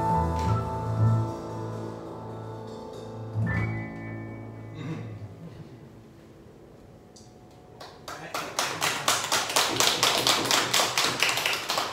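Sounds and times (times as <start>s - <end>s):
audience applauding: 7.8s - 11.9s.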